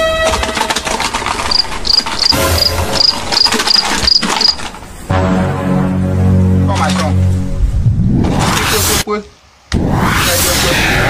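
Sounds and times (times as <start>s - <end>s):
rapid rattling clicks: 0.4s - 2.4s, 3.3s - 4.8s
cricket chirping: 1.4s - 4.7s
low sustained music chords: 5.1s - 8.0s.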